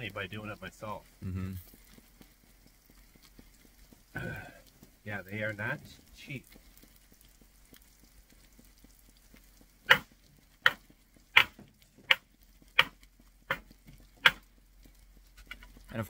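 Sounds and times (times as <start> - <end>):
food sizzling: 0.0 - 16.0
metal spatula tapping pan: 9.9 - 12.2.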